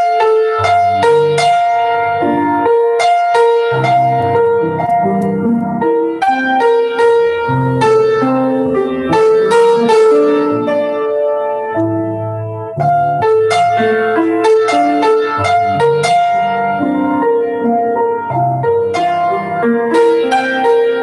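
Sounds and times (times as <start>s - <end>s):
grand piano playing: 0.0s - 21.0s.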